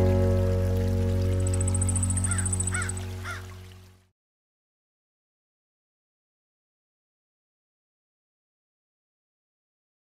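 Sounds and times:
sustained music chord: 0.0 - 3.8
crow cawing: 2.2 - 3.6.

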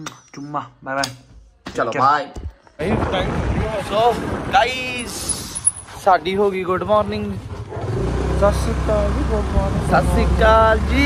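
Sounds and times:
wind buffeting microphone: 2.8 - 7.2.

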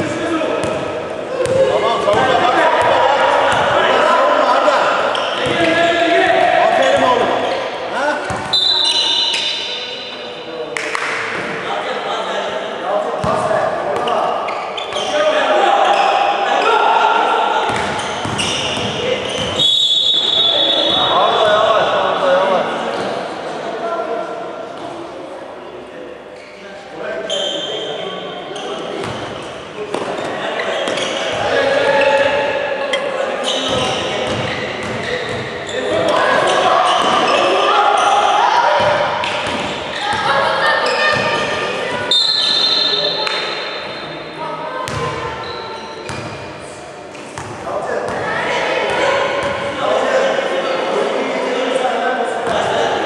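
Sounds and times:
voices of players and spectators: 0.0 - 53.0
basketball bouncing: 1.4 - 3.7
shrill whistle blast: 8.5 - 9.7, 19.6 - 21.1, 42.1 - 43.2.

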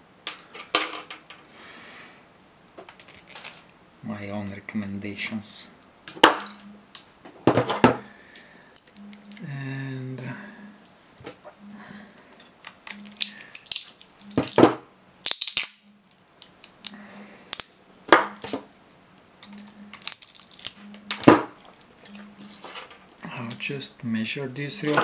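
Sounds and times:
battery cells knocking together: 7.6 - 9.4, 12.6 - 18.6, 19.4 - 22.6.

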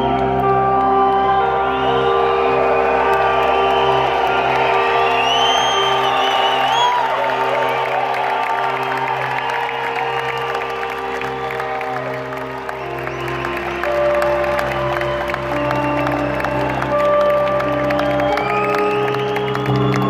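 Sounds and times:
crowd cheering and whooping: 0.0 - 20.0.

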